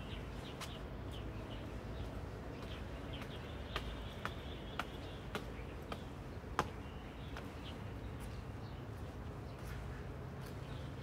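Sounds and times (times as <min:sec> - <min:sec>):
footsteps on pavement: 0:00.0 - 0:11.0
low outdoor background noise: 0:00.0 - 0:11.0.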